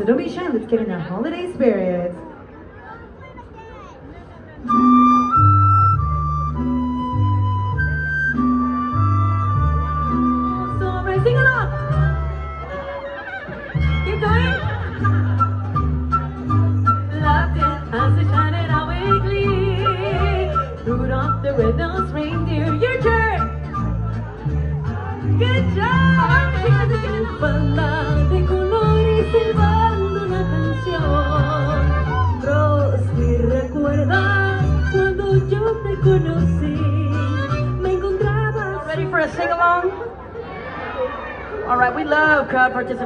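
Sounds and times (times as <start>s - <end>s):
crowd chatter: 0.0s - 43.0s
mariachi band playing: 4.5s - 43.0s
flute melody: 4.6s - 25.1s
violin: 4.6s - 39.2s
deep bass guitar notes: 4.7s - 12.8s, 13.8s - 39.2s
pulsing bass line: 4.8s - 12.7s
woman singing with vibrato: 17.1s - 23.7s, 24.9s - 39.4s.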